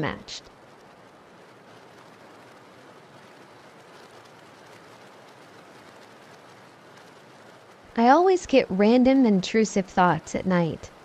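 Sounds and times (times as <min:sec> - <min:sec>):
rain hiss: 0:00.0 - 0:11.0.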